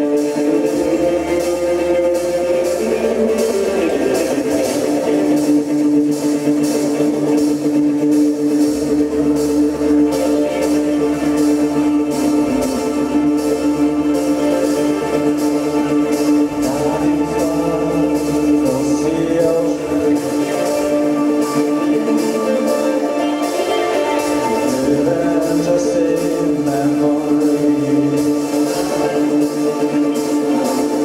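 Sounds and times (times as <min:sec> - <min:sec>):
bass guitar: 0:00.0 - 0:31.0
drum kit beat: 0:00.0 - 0:31.0
electric guitar: 0:00.0 - 0:31.0.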